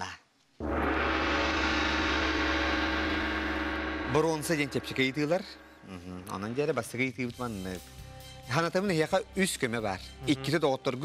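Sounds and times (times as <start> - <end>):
gong-like ringing tone: 0.6 - 6.9
deep hum: 0.6 - 7.0.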